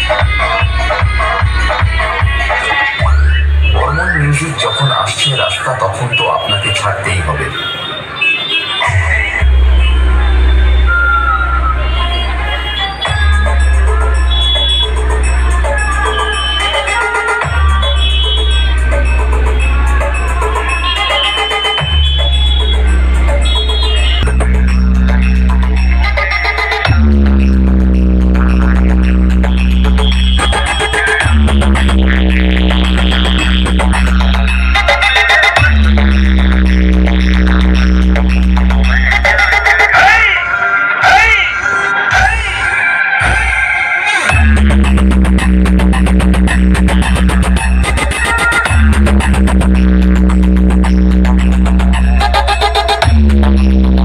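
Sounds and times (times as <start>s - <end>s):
loud electronic dance music: 0.0s - 54.0s
heavy held bass note: 26.9s - 30.6s, 31.2s - 34.6s, 35.6s - 39.2s, 44.3s - 48.0s, 48.7s - 52.2s, 53.0s - 54.0s.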